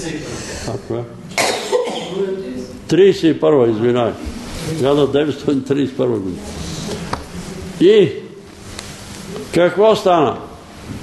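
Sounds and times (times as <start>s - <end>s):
person coughing: 1.3s - 2.2s.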